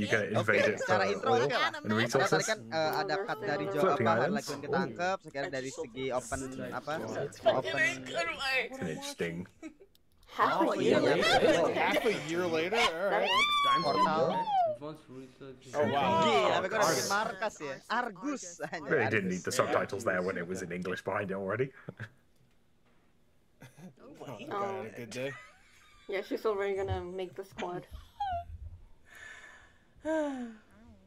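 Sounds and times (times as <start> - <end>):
people talking: 0.0 - 9.4, 10.4 - 22.0, 24.1 - 25.4, 26.1 - 28.4.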